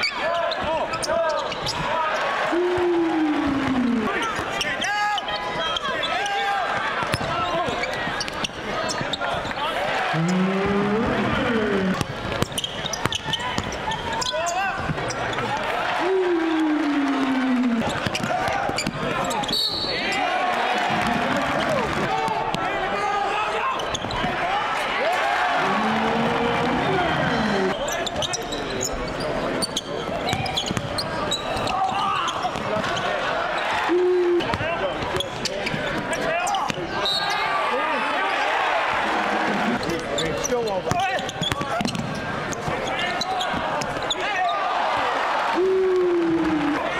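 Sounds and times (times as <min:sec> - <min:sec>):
sneakers squeaking: 0:00.0 - 0:01.9, 0:04.2 - 0:09.6, 0:10.3 - 0:15.6, 0:17.8 - 0:20.2, 0:23.7 - 0:24.4, 0:26.7 - 0:33.1, 0:39.7 - 0:44.6
players and crowd calling out: 0:00.0 - 0:46.9
ball bouncing on hardwood court: 0:41.4 - 0:42.1.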